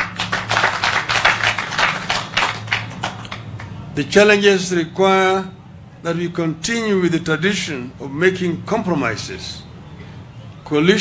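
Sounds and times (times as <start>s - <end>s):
audience applauding: 0.0s - 3.7s.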